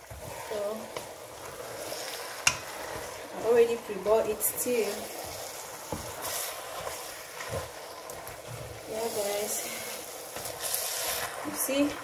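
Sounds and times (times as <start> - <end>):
food sizzling hiss: 0.0 - 12.0
spoon stirring a pot: 0.0 - 12.0.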